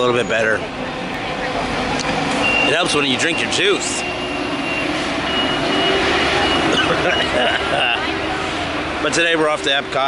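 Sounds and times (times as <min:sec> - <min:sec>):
vehicle engine hum: 0:00.0 - 0:10.0
high-pitched electronic beep: 0:02.4 - 0:07.4.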